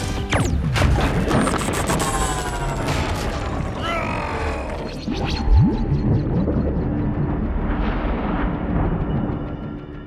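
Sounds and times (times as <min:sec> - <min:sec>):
dramatic film score: 0:00.0 - 0:10.0
deep rumbling sound effects: 0:04.5 - 0:10.0.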